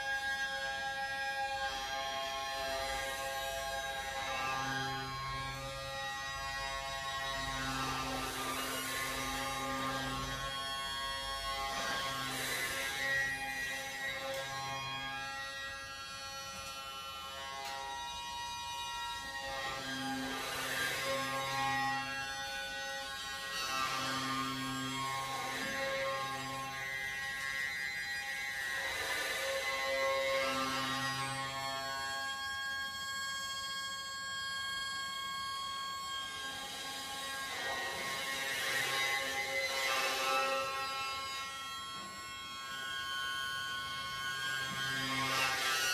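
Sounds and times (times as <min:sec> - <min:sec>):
hurdy-gurdy playing drones: 0:00.0 - 0:29.0, 0:29.6 - 0:45.9.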